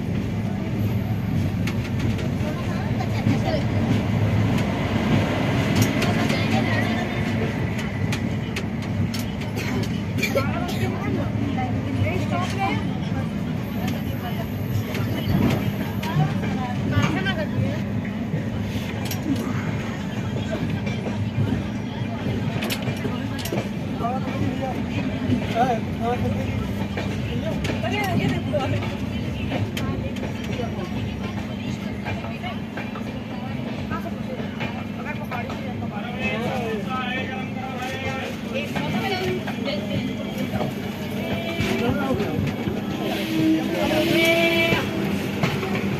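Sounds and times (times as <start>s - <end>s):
passengers talking: 0.0s - 45.9s
train rumbling: 0.0s - 45.9s.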